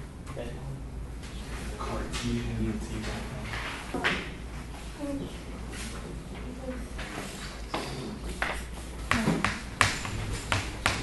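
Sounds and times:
chalk tapping on chalkboard: 7.7 - 11.0.

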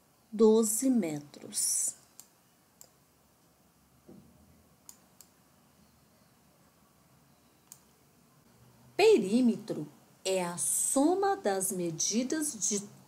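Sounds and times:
faint sharp clicks: 2.0 - 3.0, 4.8 - 5.4, 7.6 - 7.9.

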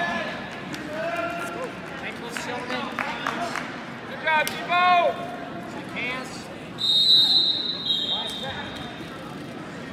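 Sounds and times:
lower whistle: 6.8 - 8.5.

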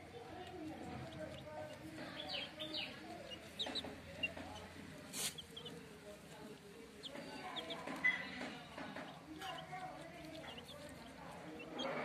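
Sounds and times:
chicks peeping: 0.0 - 12.0.

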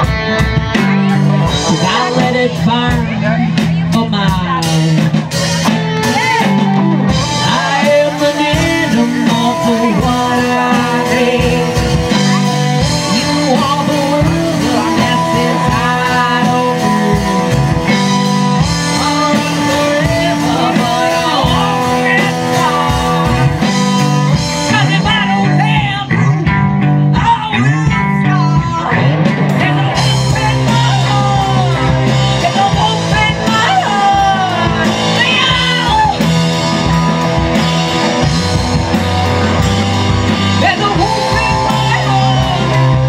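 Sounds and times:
bass guitar: 0.0 - 43.0
drum kit: 0.0 - 43.0
electric guitars: 0.0 - 43.0
live rock band playing: 0.0 - 43.0.

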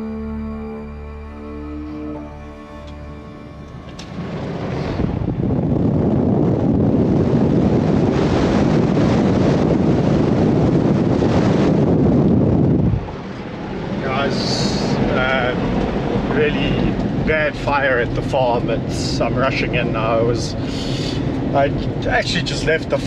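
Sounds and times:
vehicle road noise: 0.0 - 23.0
wind rushing over microphone: 3.4 - 23.0
man speaking: 14.0 - 15.7, 16.3 - 23.0.

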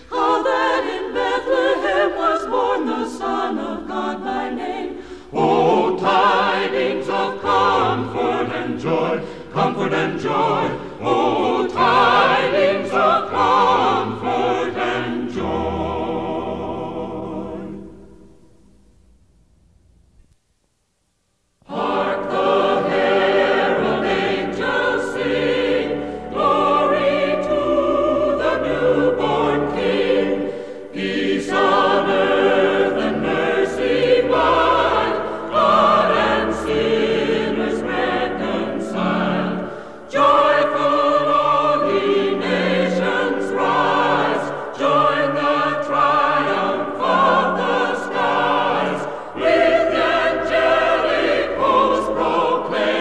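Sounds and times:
choir singing: 0.0 - 18.3, 21.6 - 53.0.

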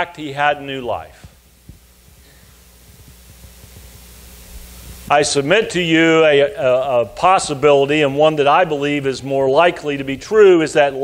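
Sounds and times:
faint hiss: 0.0 - 11.0
low electrical hum: 0.0 - 11.0.

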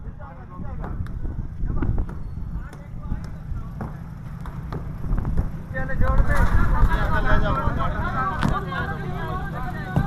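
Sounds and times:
voices in background: 5.4 - 10.0.

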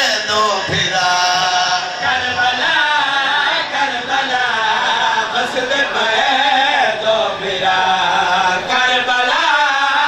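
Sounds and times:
men chanting through microphones: 0.0 - 10.0.

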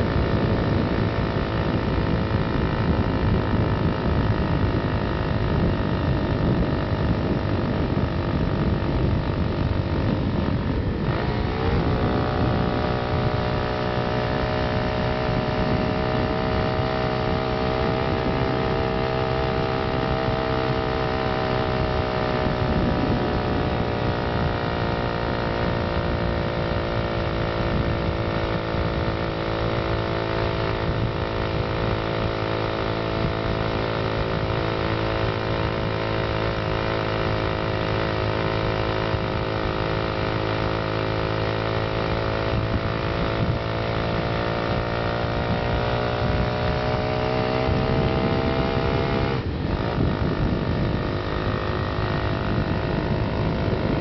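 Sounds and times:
small four-stroke engine revving: 0.0 - 54.0.

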